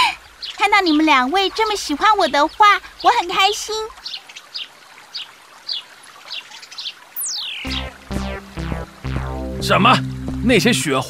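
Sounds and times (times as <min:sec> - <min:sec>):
faint trickling stream: 0:00.0 - 0:11.0
cartoon bird chirps: 0:07.2 - 0:09.6.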